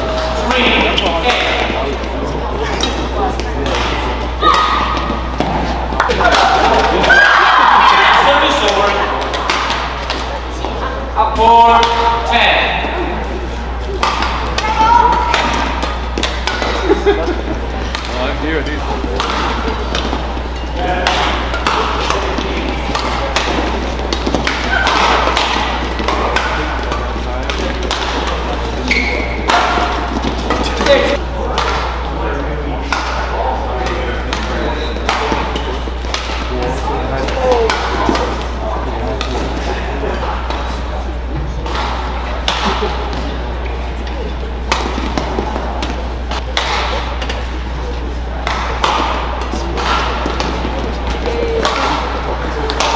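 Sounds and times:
spectators' voices: 0:00.0 - 0:52.9
racket hitting shuttlecock: 0:02.8 - 0:07.1, 0:08.7 - 0:10.4, 0:11.7 - 0:12.2, 0:13.8 - 0:16.9, 0:18.8 - 0:32.0, 0:32.9 - 0:39.5, 0:41.6 - 0:43.3, 0:44.1 - 0:47.6, 0:48.3 - 0:52.9.

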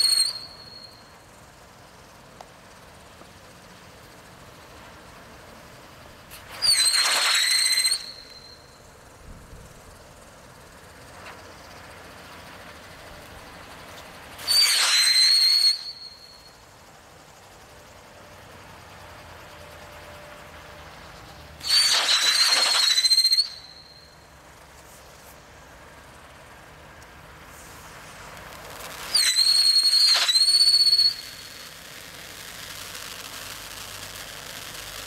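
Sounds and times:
loud shrill firework whistle: 0:00.0 - 0:02.1, 0:05.9 - 0:10.7, 0:14.3 - 0:18.5, 0:21.6 - 0:24.4, 0:27.5 - 0:35.0
firework fountain hissing: 0:00.0 - 0:35.0.

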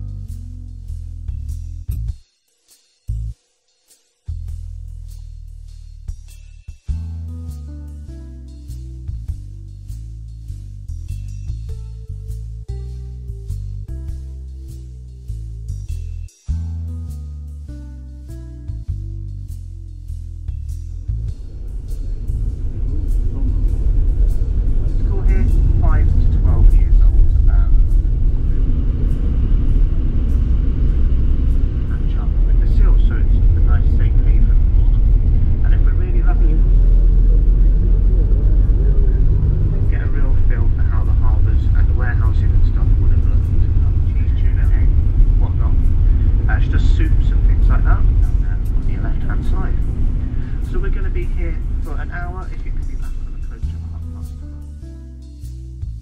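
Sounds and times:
road and wind noise rumble: 0:20.0 - 0:55.0
faint voices talking: 0:35.6 - 0:45.9.

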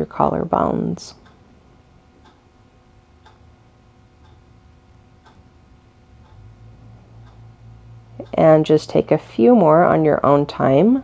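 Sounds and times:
low hum: 0:00.0 - 0:11.0
wall clock ticking: 0:01.2 - 0:01.4, 0:02.2 - 0:02.5, 0:03.2 - 0:03.5, 0:04.2 - 0:08.9.

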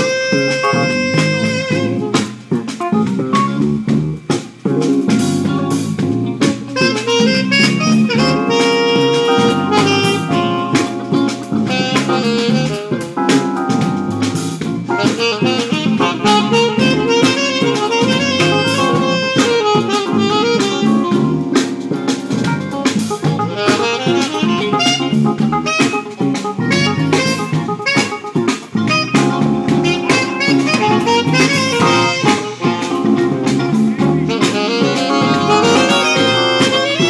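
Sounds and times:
jazz fusion band playing: 0:00.0 - 0:37.0
saxophone lead: 0:00.0 - 0:37.0.

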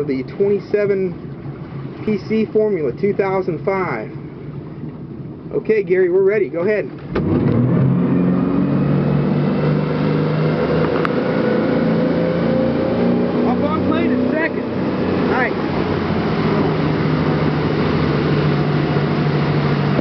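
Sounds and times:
boat engines droning: 0:00.0 - 0:20.0
wind and water rushing: 0:00.0 - 0:20.0.

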